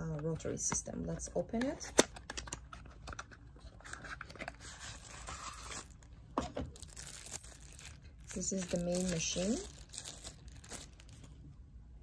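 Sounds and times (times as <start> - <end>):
wrapping rustling: 6.7 - 11.4.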